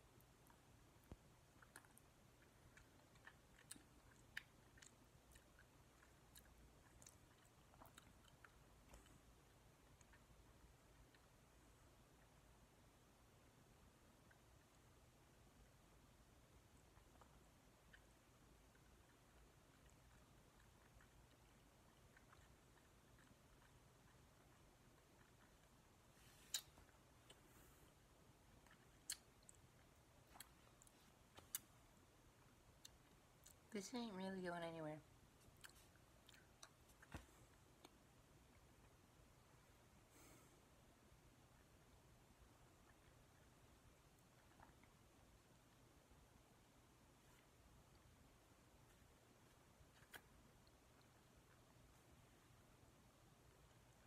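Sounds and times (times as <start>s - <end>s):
faint mouth clicks: 26.4s - 27.4s.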